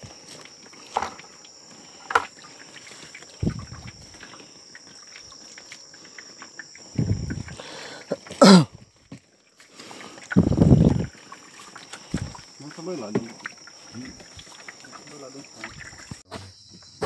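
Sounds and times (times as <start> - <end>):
crickets chirring: 0.0 - 17.0.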